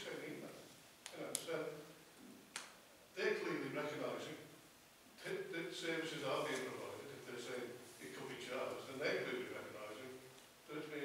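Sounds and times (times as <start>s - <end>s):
man talking into microphone: 0.0s - 1.9s, 3.2s - 4.5s, 5.2s - 11.0s.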